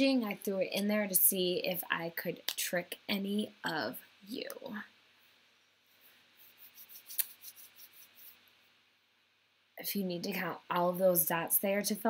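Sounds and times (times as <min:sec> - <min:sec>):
scratchy rustling: 0:05.9 - 0:08.5.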